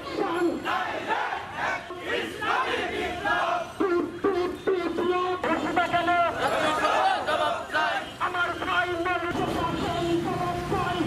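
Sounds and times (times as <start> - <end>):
crowd of men shouting slogans: 0.0 - 4.2, 5.4 - 11.0.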